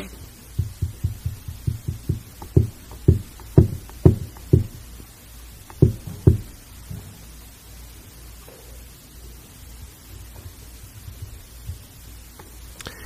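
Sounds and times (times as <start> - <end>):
soft low thumps: 0.0 - 7.5, 9.7 - 12.6.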